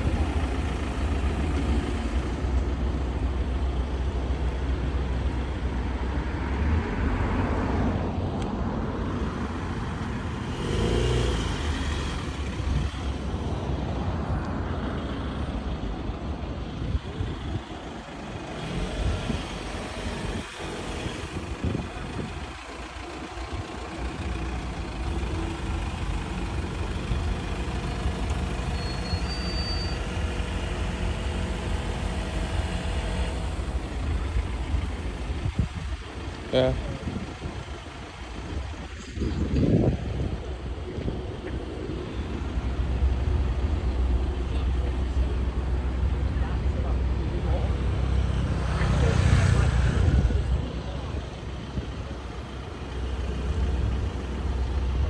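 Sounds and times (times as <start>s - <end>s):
steady low traffic rumble: 0.0s - 55.0s
vehicles passing: 0.0s - 55.0s.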